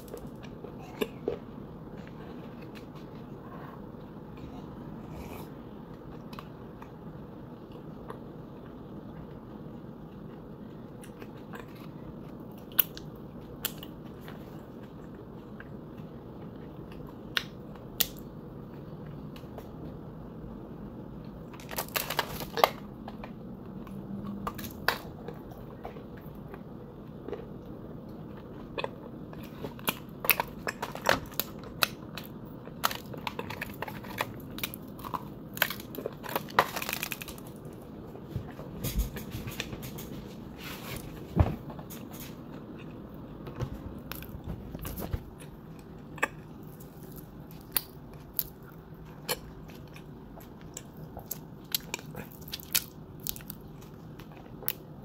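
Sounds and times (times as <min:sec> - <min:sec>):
low background noise: 0:00.0 - 0:55.0.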